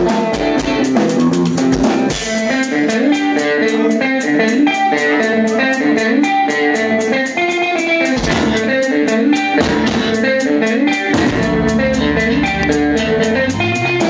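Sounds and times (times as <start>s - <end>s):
electric guitar picked melody: 0.0s - 14.0s
fast steady beat: 0.0s - 14.0s
deep bass notes: 11.1s - 14.0s.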